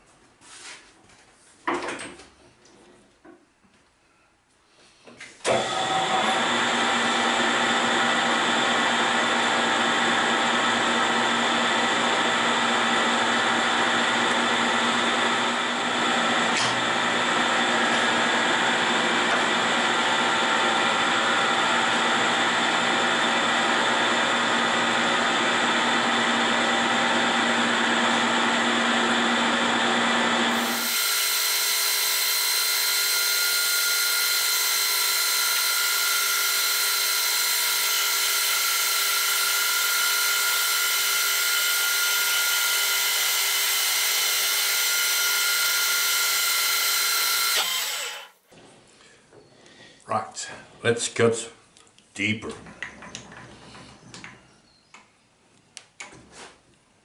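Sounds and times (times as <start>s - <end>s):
metal lathe running: 30.1s - 48.4s.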